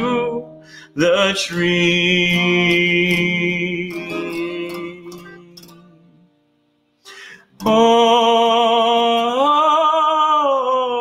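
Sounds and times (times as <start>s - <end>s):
man singing long note: 0.0s - 5.9s, 7.6s - 11.0s
strummed acoustic guitar: 0.0s - 10.4s.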